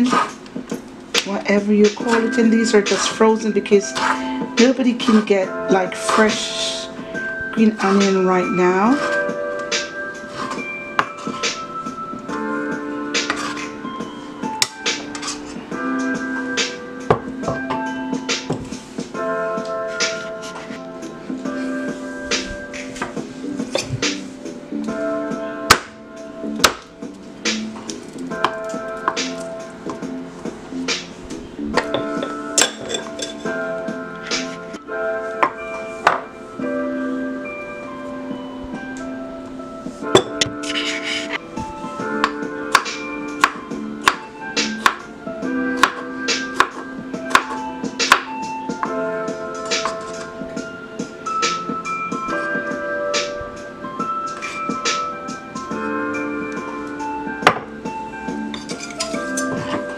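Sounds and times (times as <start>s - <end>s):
instrumental background music: 0.0s - 59.9s.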